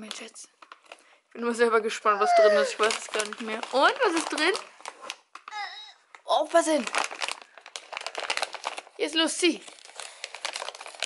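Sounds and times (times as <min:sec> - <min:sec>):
paper bag crumpling: 0:02.2 - 0:11.0.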